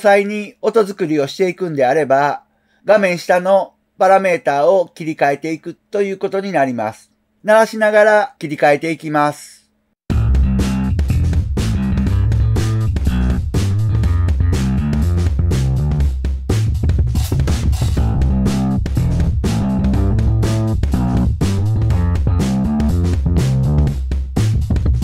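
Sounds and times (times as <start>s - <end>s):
drum beat: 10.1s - 25.0s
slap bass line: 10.1s - 25.0s.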